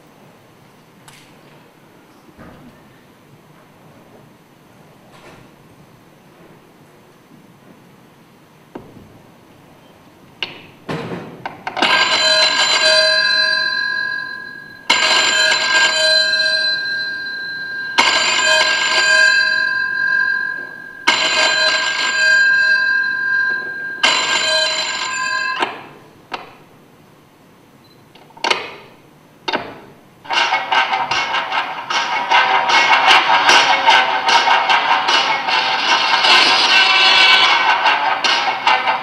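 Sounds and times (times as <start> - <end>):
ringing tone: 11.8 - 26.0
music: 30.2 - 39.0.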